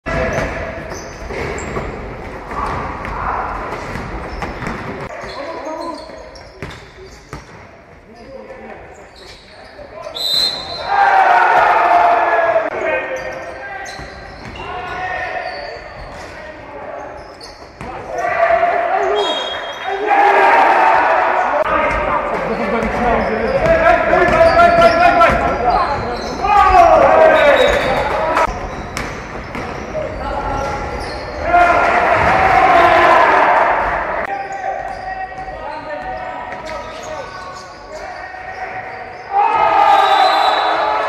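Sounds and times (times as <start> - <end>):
players shouting: 9.7 - 17.1, 17.8 - 28.6, 29.8 - 41.0
basketball bouncing on wooden floor: 22.8 - 26.2.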